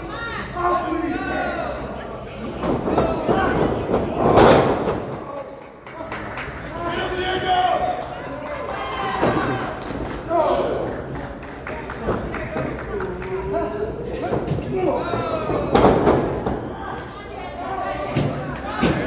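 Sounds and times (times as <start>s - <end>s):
spectators shouting: 6.8s - 10.8s.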